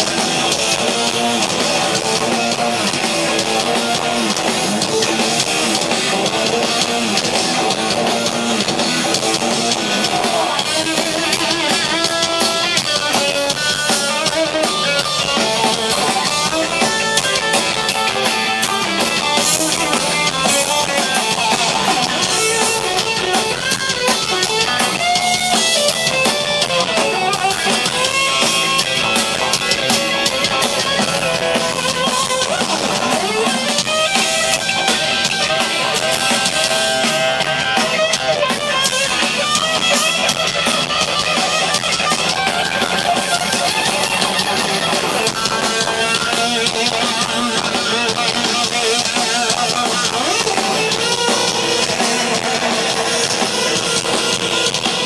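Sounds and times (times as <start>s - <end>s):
live rock band playing: 0.0s - 55.0s.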